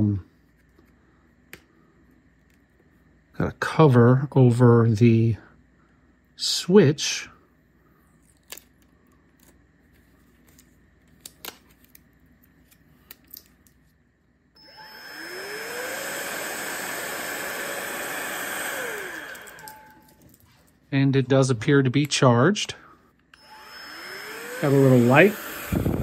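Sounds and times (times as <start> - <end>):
fan motor whine and air rush: 14.6 - 20.7, 22.8 - 26.0.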